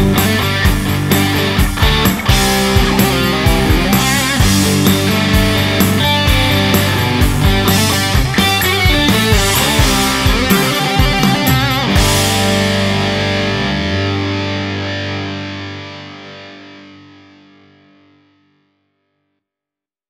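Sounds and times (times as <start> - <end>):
rock band playing: 0.0 - 16.5.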